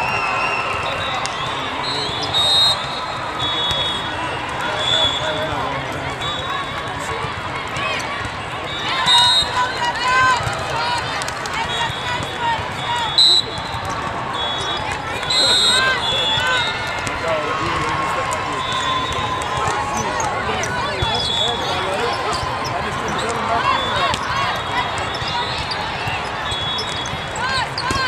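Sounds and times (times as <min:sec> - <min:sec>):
referee's whistle: 0:00.0 - 0:05.6, 0:06.2 - 0:06.7, 0:08.7 - 0:09.8, 0:11.6 - 0:16.9, 0:18.4 - 0:22.4, 0:23.0 - 0:28.0
volleyballs hit and bounced: 0:10.1 - 0:15.3, 0:16.0 - 0:28.0
sneakers squeaking on court: 0:20.0 - 0:28.0.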